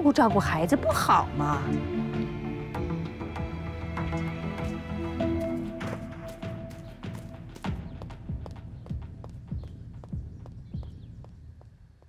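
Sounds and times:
footsteps on stone paving: 0.4s - 12.0s.

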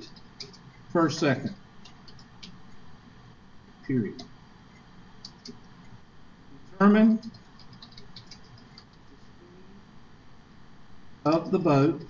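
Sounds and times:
computer keyboard typing: 0.0s - 0.7s, 1.8s - 2.6s, 5.2s - 5.7s, 7.2s - 9.0s.

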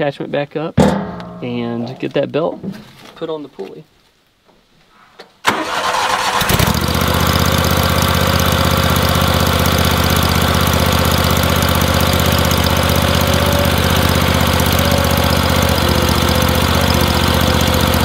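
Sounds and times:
tractor engine starting: 5.4s - 18.0s.

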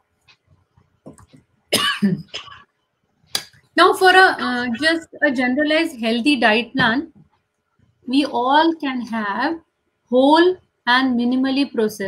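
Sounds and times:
woman coughing: 1.7s - 2.7s.

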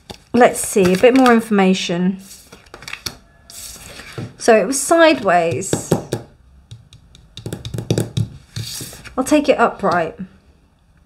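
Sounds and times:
papery card rustle: 0.0s - 1.4s, 2.2s - 4.3s
cards tapping: 5.1s - 9.1s.

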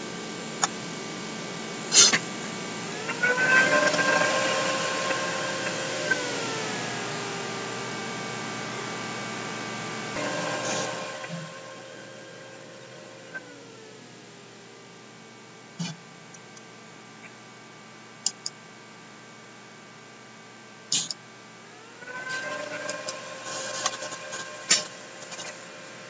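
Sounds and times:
computer cooling fan whirring: 0.0s - 26.0s.

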